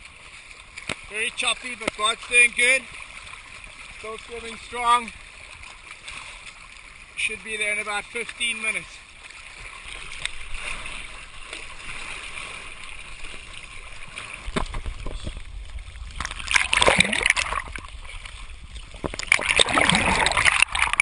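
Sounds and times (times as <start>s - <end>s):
choppy water splashing: 0.0s - 21.0s
waves washing over camera: 0.0s - 21.0s.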